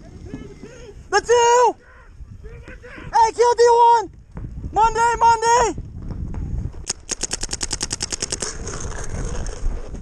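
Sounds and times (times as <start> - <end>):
paintball marker rapid firing: 6.8 - 8.9.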